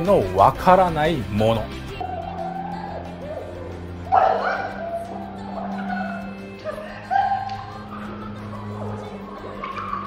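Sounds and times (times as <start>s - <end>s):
low music drone: 1.6s - 10.0s
actors shouting cries: 2.0s - 10.0s.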